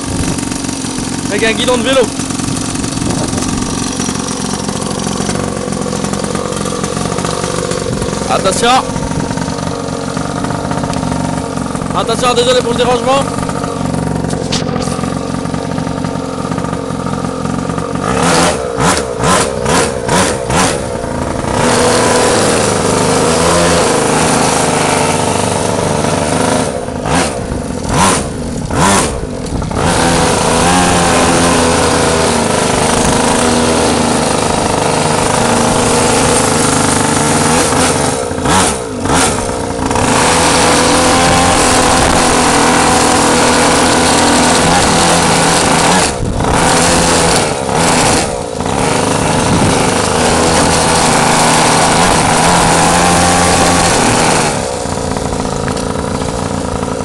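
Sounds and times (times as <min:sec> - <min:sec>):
motorbike engine revving: 0:00.0 - 0:57.0.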